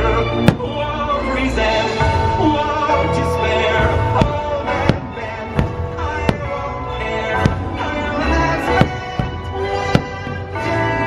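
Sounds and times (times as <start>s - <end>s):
soundtrack music: 0.0s - 11.0s
firework bang: 0.4s - 0.8s, 3.9s - 7.9s, 8.6s - 10.5s.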